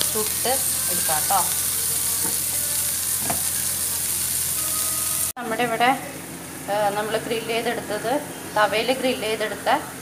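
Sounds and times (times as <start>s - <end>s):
chicken sizzling on grill pan: 0.0s - 5.3s.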